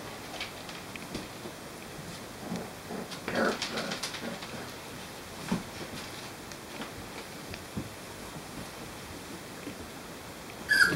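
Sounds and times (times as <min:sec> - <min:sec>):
soft puppy sounds: 0:10.6 - 0:10.9
puppy loud call: 0:10.7 - 0:10.9.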